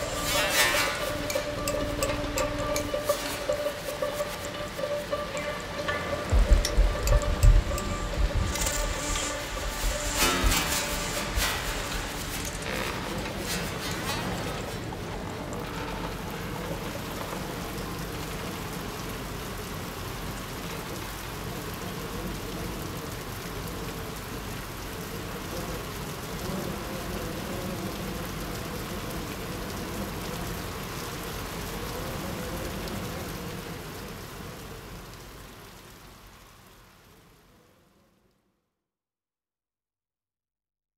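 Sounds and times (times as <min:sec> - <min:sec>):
faint wavering low sound: 0:00.0 - 0:12.5
rain-like hiss: 0:00.0 - 0:38.8.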